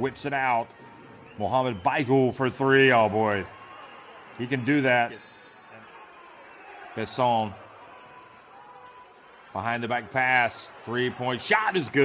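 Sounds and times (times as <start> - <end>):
crowd murmur and court noise: 0.0 - 12.0
commentator talking: 9.6 - 12.0.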